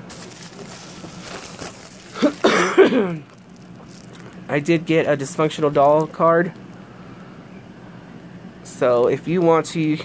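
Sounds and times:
woman coughing loudly: 0:02.1 - 0:03.2.

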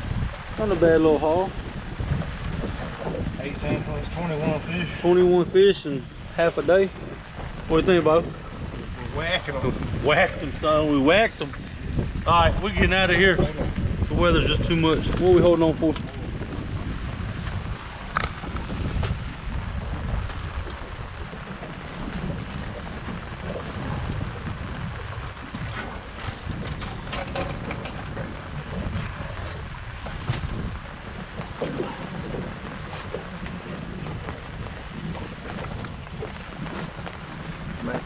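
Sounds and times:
wind buffeting microphone: 0:00.0 - 0:38.0
knocks of fish in boat: 0:25.5 - 0:38.0.

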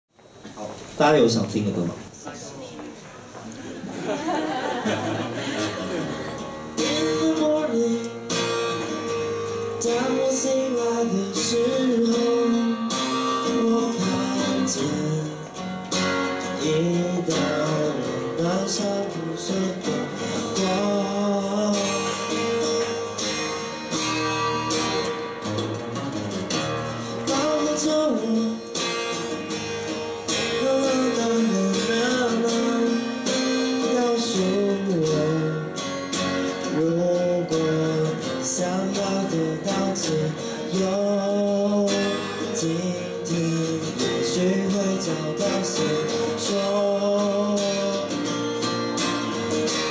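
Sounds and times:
strummed acoustic guitar: 0:03.8 - 0:49.9
man singing: 0:06.2 - 0:15.7, 0:16.3 - 0:23.2, 0:27.0 - 0:29.3, 0:30.2 - 0:49.9.

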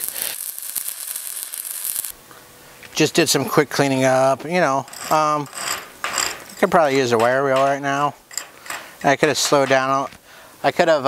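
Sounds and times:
welding arc crackling: 0:00.0 - 0:02.2.

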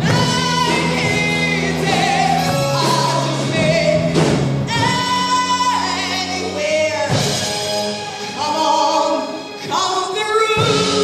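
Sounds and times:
live band playing: 0:00.0 - 0:11.0
woman singing with vibrato: 0:00.0 - 0:11.0.

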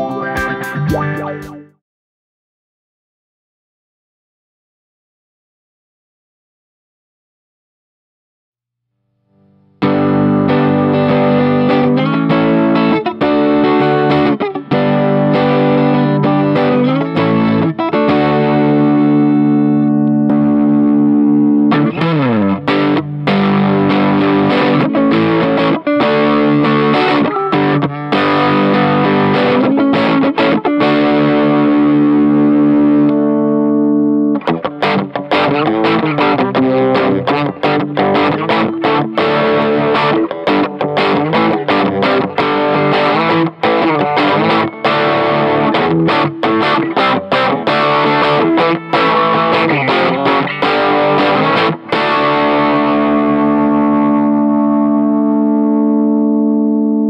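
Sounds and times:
distorted electric guitar: 0:00.0 - 0:01.8, 0:09.2 - 0:57.0.

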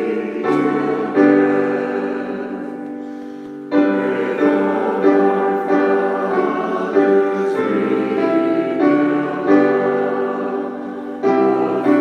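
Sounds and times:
choir singing held notes: 0:00.0 - 0:12.0
piano accompaniment: 0:00.0 - 0:12.0.

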